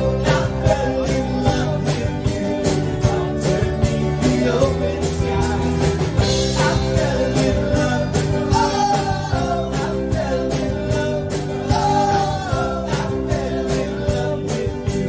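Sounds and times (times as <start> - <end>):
drum kit steady beat: 0.0 - 15.0
guitars: 0.0 - 15.0.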